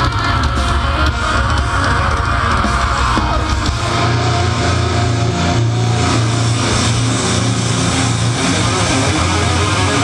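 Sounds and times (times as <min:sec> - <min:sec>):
bass guitar: 0:00.0 - 0:10.0
distorted electric guitars: 0:00.0 - 0:10.0.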